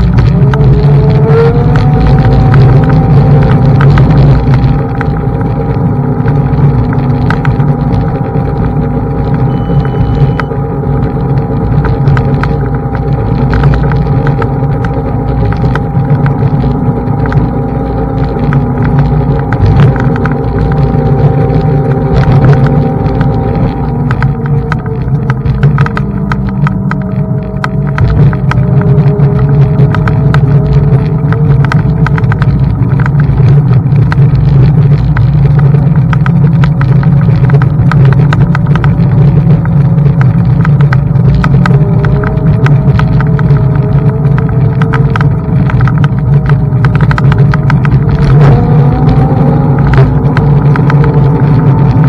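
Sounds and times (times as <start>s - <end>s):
electric scooter motor whine: 0.0s - 32.4s, 38.8s - 52.0s
wind and tyre noise: 0.0s - 52.0s.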